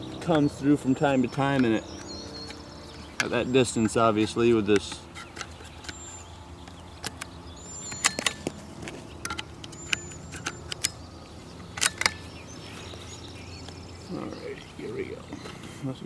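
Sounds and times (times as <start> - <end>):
steady low hum: 0.0 - 16.0
rifle bolt metallic clicks: 6.7 - 11.0, 11.7 - 12.2.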